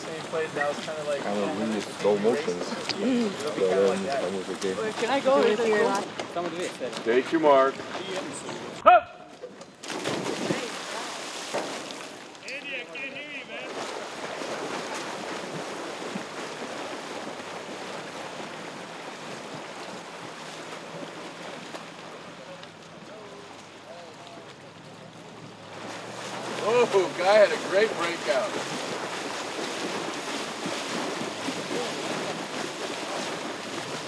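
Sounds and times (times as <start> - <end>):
swimmers diving into pool: 0.0 - 34.0
swimmers splashing: 0.0 - 34.0.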